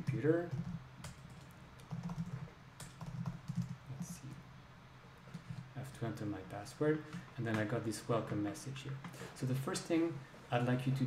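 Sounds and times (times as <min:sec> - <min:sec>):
computer keyboard typing: 0:00.0 - 0:04.4.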